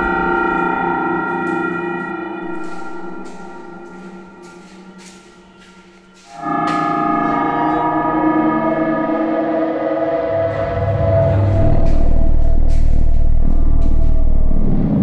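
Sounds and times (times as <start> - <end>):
gong-like ringing drone: 0.0 - 15.0
deep low rumble: 7.2 - 15.0.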